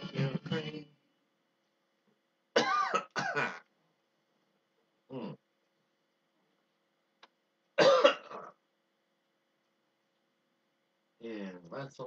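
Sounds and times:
man clearing his throat: 2.6 - 3.7, 7.8 - 8.6.

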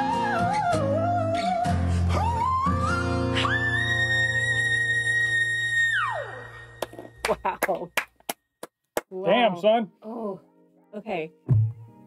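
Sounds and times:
hand claps: 6.8 - 9.2.

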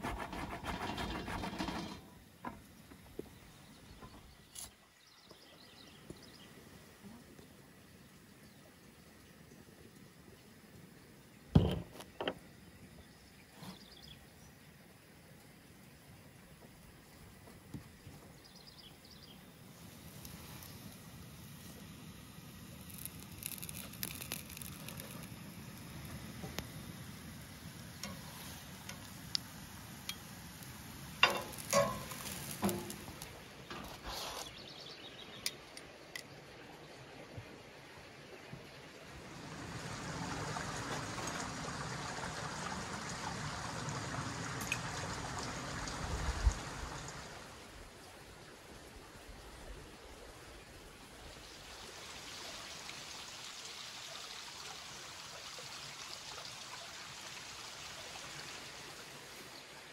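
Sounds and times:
creek water flowing: 0.8 - 59.9
food sizzling on a griddle: 19.7 - 33.5
metal tongs clinking on pan: 31.2 - 33.0.

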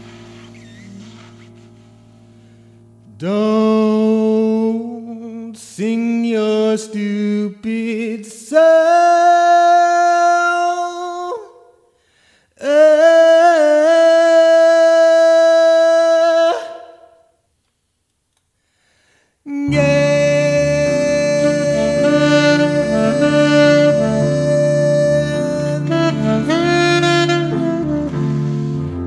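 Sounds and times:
saxophone: 0.0 - 2.8, 19.5 - 29.0
keyboard chords: 0.0 - 3.9, 19.6 - 29.0
man singing long notes: 3.1 - 11.7, 12.6 - 17.1, 19.5 - 28.5.

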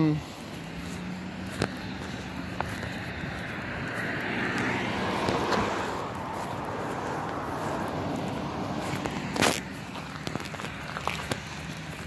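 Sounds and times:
vehicle going by: 0.0 - 12.0.

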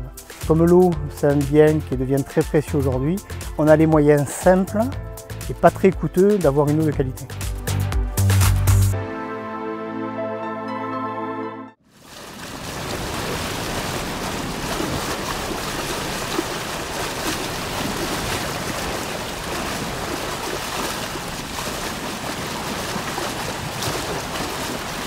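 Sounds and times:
rushing water: 11.8 - 25.0.

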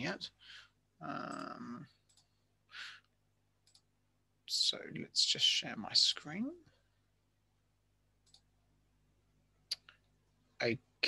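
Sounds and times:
faint clicks: 1.2 - 2.4, 3.0 - 3.9, 8.2 - 8.5.

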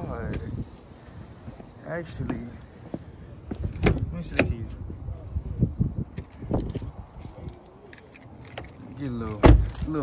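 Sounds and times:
keys jangling: 6.2 - 10.0.

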